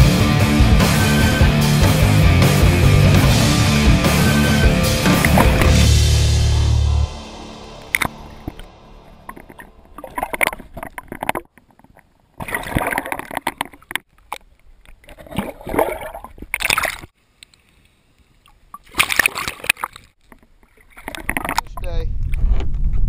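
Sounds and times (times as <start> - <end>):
rock music: 0.0 - 10.7
water sloshing and gurgling: 4.9 - 6.0, 7.8 - 17.2, 18.2 - 22.6.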